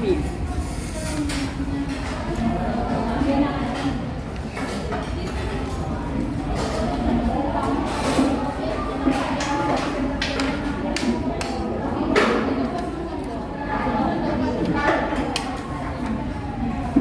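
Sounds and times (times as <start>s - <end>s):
diners chatting: 0.0s - 17.0s.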